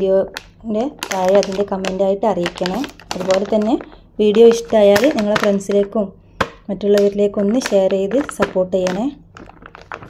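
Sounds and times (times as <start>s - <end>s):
woman speaking: 0.0s - 9.2s
plastic zip bag crackling: 0.4s - 5.8s, 7.0s - 10.0s.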